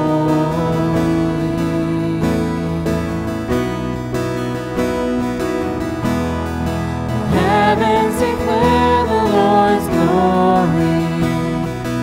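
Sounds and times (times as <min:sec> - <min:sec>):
man singing: 0:00.0 - 0:03.1, 0:07.3 - 0:12.0
guitar chords: 0:00.0 - 0:12.0.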